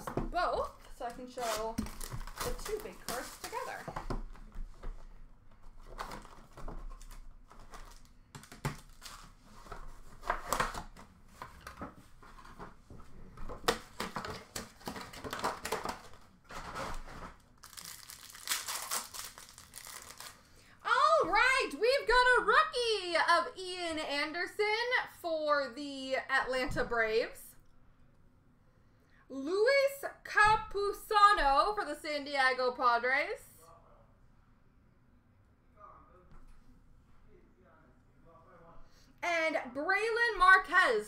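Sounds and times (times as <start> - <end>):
packaging crinkling and tearing: 1.2 - 3.8, 5.7 - 11.0, 13.8 - 20.6.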